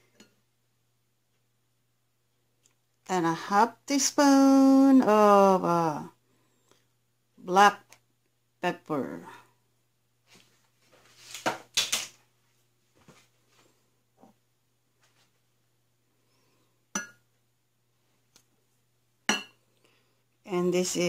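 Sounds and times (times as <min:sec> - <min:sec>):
glass bowls clinking: 0:17.0 - 0:17.2, 0:19.3 - 0:19.6.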